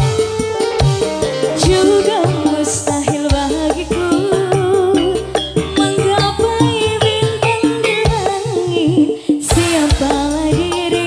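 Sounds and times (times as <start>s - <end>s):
live band playing: 0.0s - 11.0s
steady drum beat: 0.0s - 11.0s
woman singing into a microphone: 1.5s - 11.0s.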